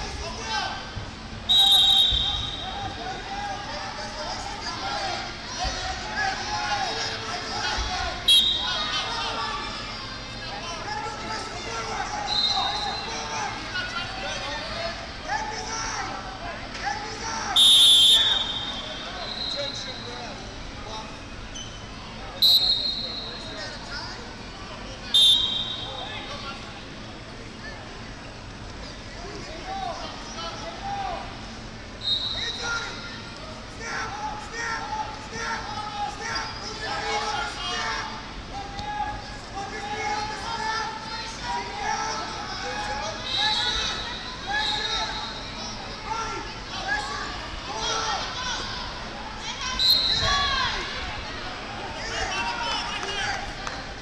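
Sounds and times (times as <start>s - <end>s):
referee's whistle blast: 1.5s - 2.8s, 8.3s - 8.8s, 17.6s - 19.9s, 22.4s - 23.5s, 25.2s - 26.1s, 32.0s - 32.7s, 49.8s - 50.3s
people shouting in a hall: 32.4s - 53.7s.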